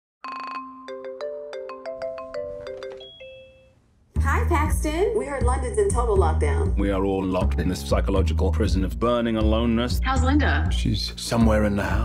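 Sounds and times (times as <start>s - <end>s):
bell-like melody: 0.3s - 3.8s.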